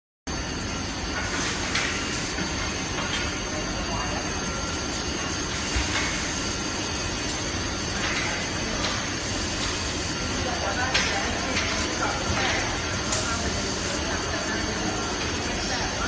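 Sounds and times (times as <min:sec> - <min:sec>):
assembly line machinery din: 0:00.3 - 0:16.0.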